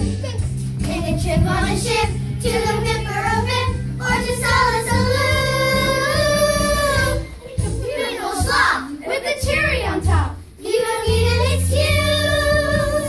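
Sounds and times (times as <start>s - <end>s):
backing track with bass: 0.0s - 8.6s
children singing show tune: 0.0s - 13.0s.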